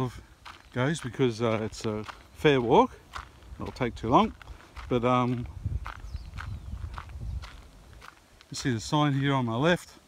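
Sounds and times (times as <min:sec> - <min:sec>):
footsteps on gravel: 0:00.0 - 0:09.9
low microphone rumble: 0:01.4 - 0:08.0.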